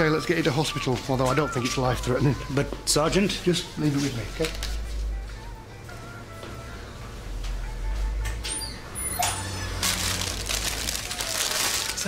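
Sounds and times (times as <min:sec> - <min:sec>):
plastic packets crinkling: 0:04.3 - 0:04.8, 0:09.6 - 0:12.0.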